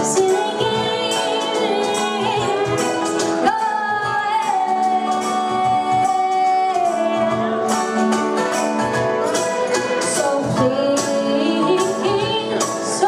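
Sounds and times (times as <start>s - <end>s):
cajon beat: 0.0s - 13.0s
guitar: 0.0s - 13.0s
lap steel guitar: 0.0s - 13.0s.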